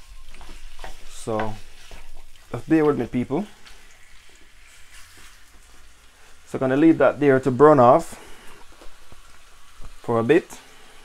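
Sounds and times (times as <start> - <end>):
chicken sizzling in oil: 0.0 - 11.0
crackles of frying: 0.0 - 11.0.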